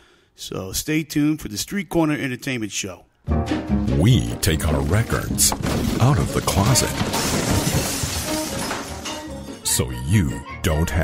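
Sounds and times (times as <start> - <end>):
crashing shattering sound effect: 5.5 - 9.4.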